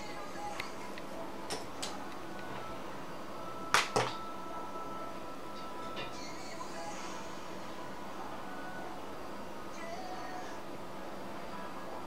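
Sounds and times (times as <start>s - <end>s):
faint high-pitched hum: 0.0s - 12.0s.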